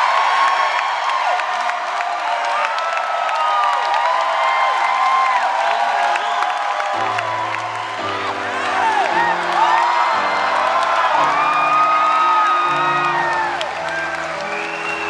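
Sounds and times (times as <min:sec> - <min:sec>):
concert crowd cheering: 0:00.0 - 0:15.0.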